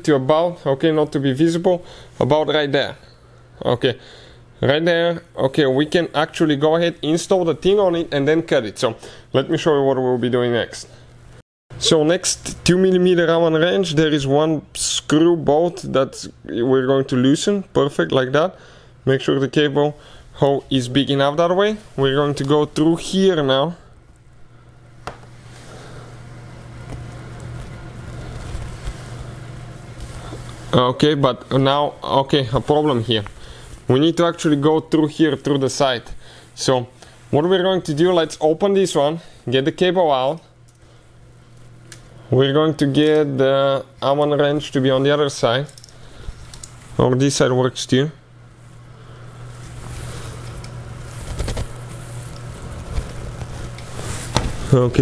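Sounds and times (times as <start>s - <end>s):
steady low hum: 0.0s - 55.0s
cable handling noise and ticks: 21.8s - 23.2s, 26.8s - 29.3s, 32.5s - 33.9s, 39.8s - 42.2s, 42.8s - 43.4s, 44.0s - 47.0s, 49.6s - 54.9s.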